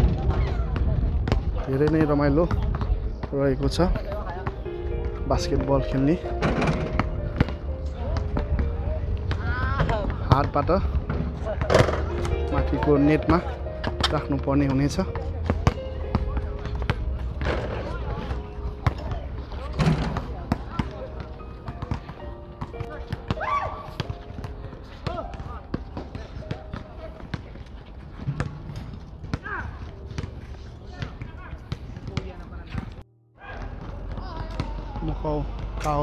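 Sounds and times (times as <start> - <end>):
basketballs bouncing on concrete: 0.0 - 36.0
faint players' voices: 0.0 - 36.0.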